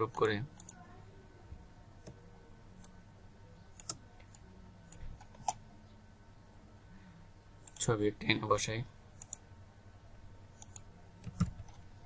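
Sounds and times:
low steady hum: 0.0s - 12.0s
computer mouse clicking: 0.1s - 0.8s, 3.8s - 5.6s, 7.6s - 7.8s, 9.2s - 9.4s, 10.6s - 11.8s.

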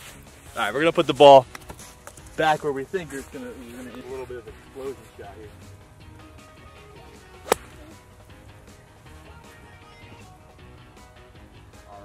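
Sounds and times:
background music: 0.0s - 12.0s
golf club thwack in sand: 7.4s - 8.0s.

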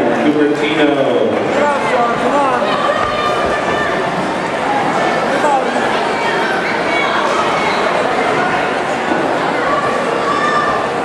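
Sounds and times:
crowd babble: 0.0s - 11.0s
people calling out: 1.6s - 11.0s.

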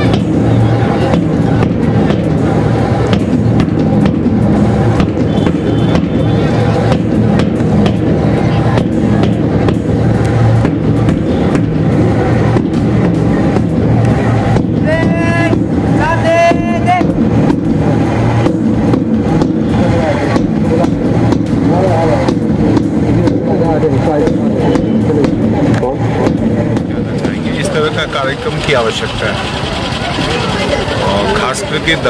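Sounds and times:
voices: 0.0s - 3.6s, 4.6s - 32.0s
music: 0.0s - 32.0s
steady low rumble: 0.0s - 32.0s.

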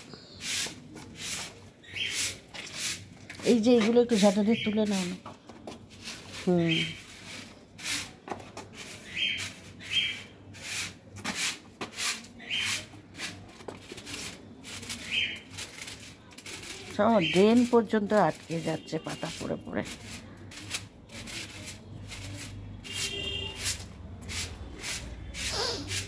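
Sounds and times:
broom scraping wet concrete: 0.4s - 5.2s, 5.9s - 26.0s.

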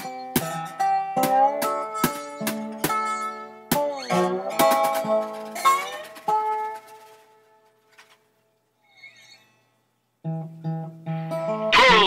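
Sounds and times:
strummed string chords: 0.0s - 6.8s.

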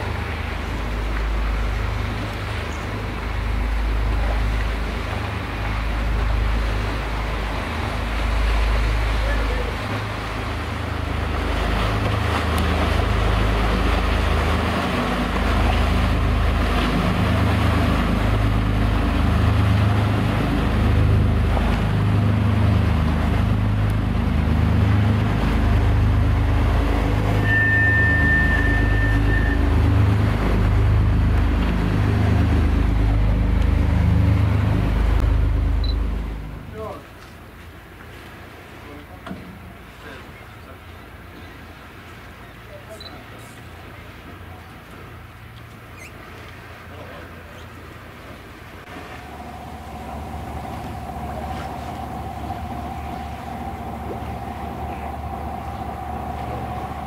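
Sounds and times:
boat diesel engines rumbling: 0.0s - 57.0s
thin high whistle: 27.2s - 29.8s.

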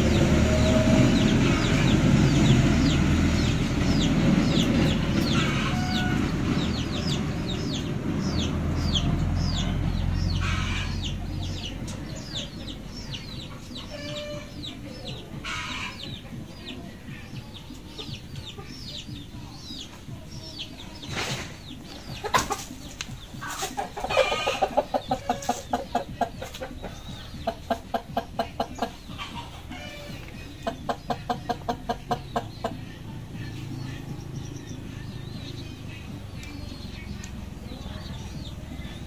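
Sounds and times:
chickens clucking: 0.0s - 39.0s.

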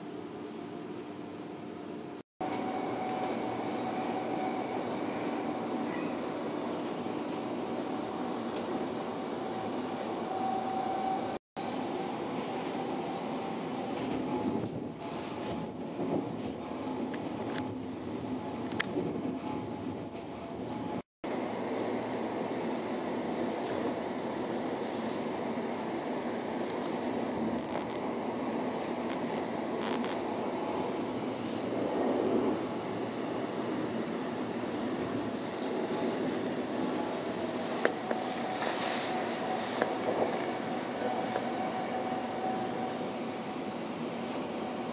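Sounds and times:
train wheels rumbling on rails: 2.6s - 21.0s, 21.8s - 44.9s.

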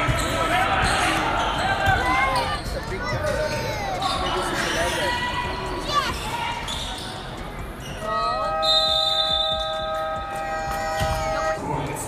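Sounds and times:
sneaker squeaks: 0.0s - 11.6s
spectators' voices: 0.0s - 12.0s.

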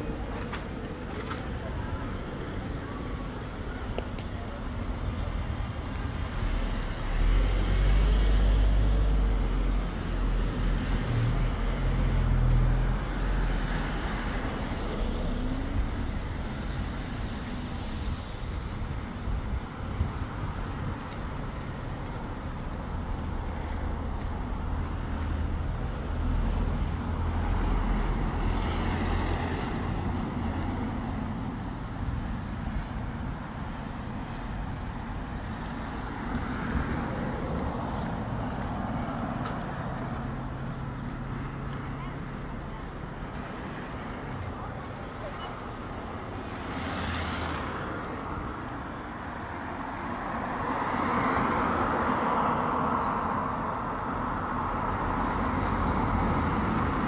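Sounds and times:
crickets chirping: 0.0s - 57.0s
low traffic rumble: 0.0s - 57.0s
insects trilling: 2.1s - 57.0s.

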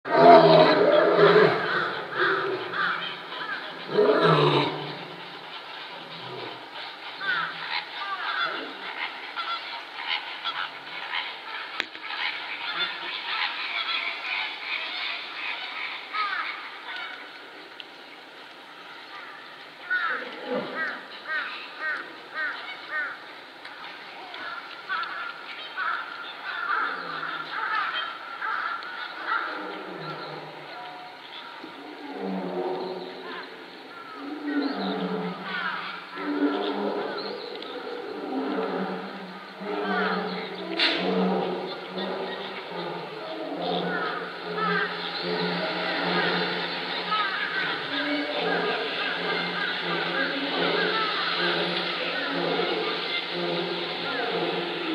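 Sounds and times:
lion roaring: 0.1s - 2.9s, 3.8s - 5.2s, 29.5s - 30.7s, 31.8s - 33.2s, 36.2s - 54.9s.

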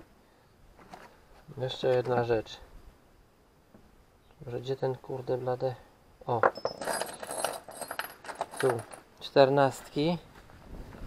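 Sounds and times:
steel bolts clinking: 6.4s - 9.1s.

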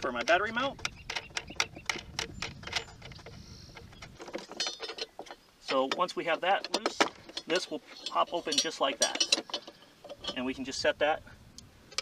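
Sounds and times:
metallic clicks and clinks: 0.2s - 10.5s
metal jingle: 4.3s - 10.6s.

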